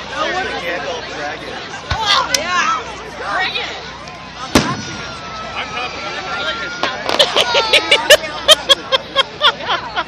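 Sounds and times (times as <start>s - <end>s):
people talking: 0.0s - 10.0s
firework bang with echo: 4.5s - 5.1s.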